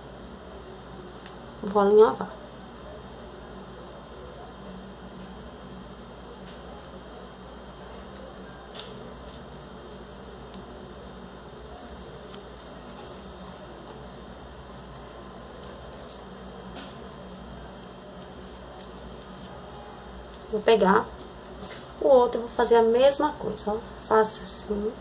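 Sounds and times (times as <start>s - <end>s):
steady background noise: 0.0s - 25.0s
high-pitched whine: 1.6s - 25.0s.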